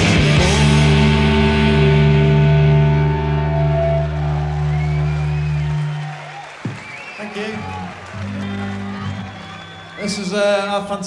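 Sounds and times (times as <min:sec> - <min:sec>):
electric guitars ringing chord: 0:00.0 - 0:06.3, 0:07.5 - 0:10.0
low bass note: 0:00.2 - 0:05.7.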